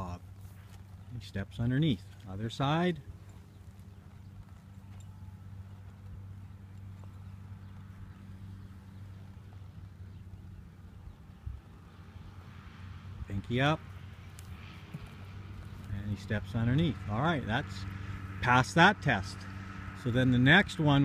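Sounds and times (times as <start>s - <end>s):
horse hooves on dirt: 0.0s - 21.0s
low hum: 0.0s - 21.0s.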